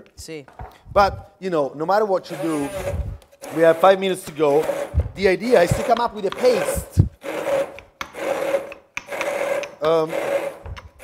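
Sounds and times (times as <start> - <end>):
pestle grinding in stone mortar: 2.6 - 11.0.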